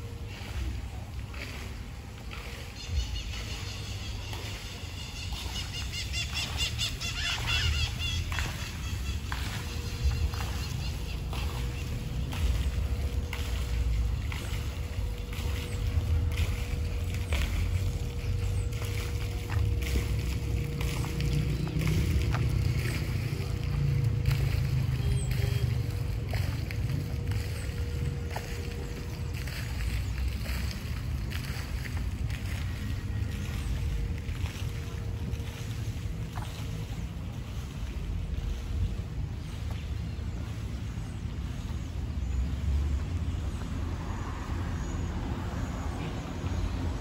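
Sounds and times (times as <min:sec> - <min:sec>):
faint steady hum: 0:00.0 - 0:42.6
steady low rumble: 0:00.0 - 0:47.0
birds chirping: 0:02.1 - 0:38.6.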